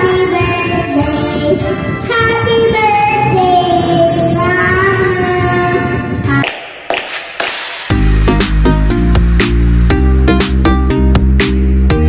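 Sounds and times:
girl singing into microphone: 0.0 - 6.4
karaoke backing track: 0.0 - 7.2, 7.8 - 12.0.

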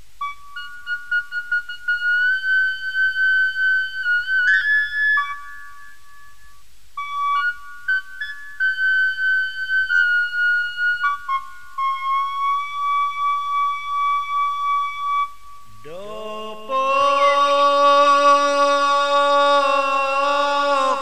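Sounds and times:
high flute-like melody: 0.2 - 16.2, 16.8 - 21.0.

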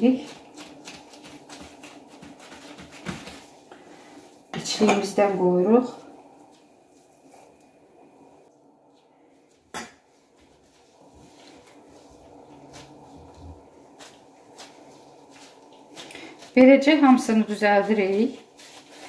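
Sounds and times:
gloved hands handling dough: 0.0 - 4.5, 8.8 - 19.0.

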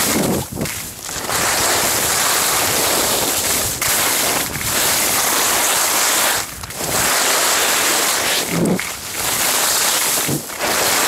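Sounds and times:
wind buffeting microphone: 0.0 - 5.4
skis scraping over snow: 0.0 - 11.0.

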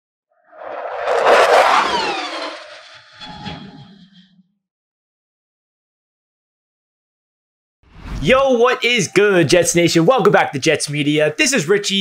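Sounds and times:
low hum: 0.5 - 4.4
loud whoosh: 0.6 - 3.8.

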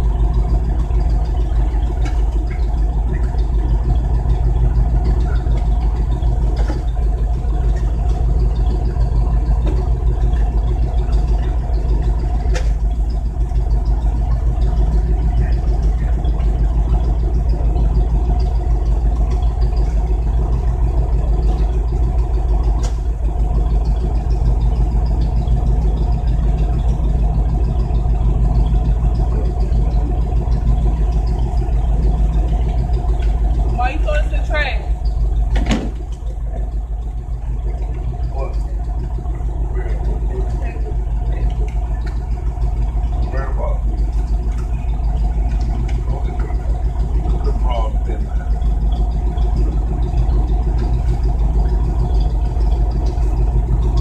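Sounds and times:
vehicle engine idling: 0.0 - 54.0.

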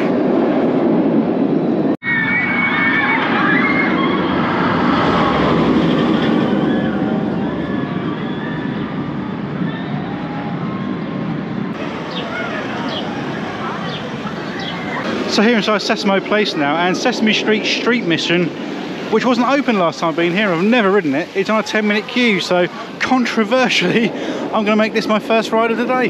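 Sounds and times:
steady background rush: 0.0 - 26.0
distant voices: 1.7 - 26.0.

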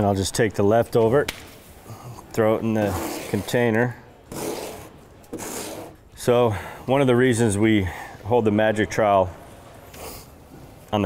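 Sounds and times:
trowel scraping: 2.8 - 6.0.

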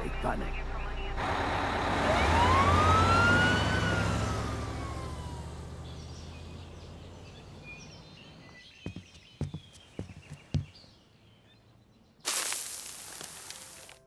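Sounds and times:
van engine rumbling: 0.0 - 9.3
siren wail: 2.1 - 5.8.

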